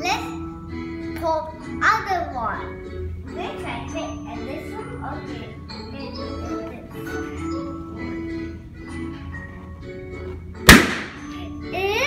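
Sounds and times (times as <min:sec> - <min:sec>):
background music: 0:00.0 - 0:12.0
balloon popping: 0:10.7 - 0:11.2.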